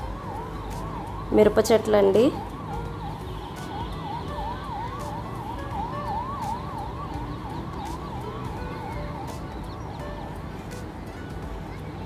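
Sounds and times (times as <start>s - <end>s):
siren yelping: 0.0s - 9.9s.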